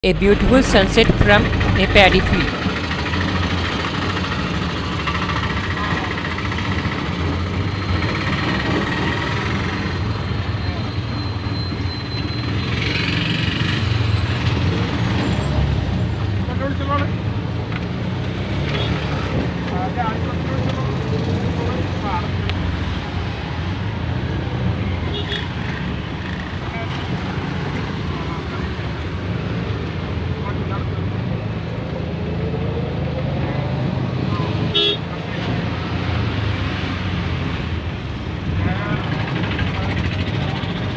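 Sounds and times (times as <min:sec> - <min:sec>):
traffic engine drone: 0:00.0 - 0:40.9
vehicle horn toots: 0:34.7 - 0:35.0.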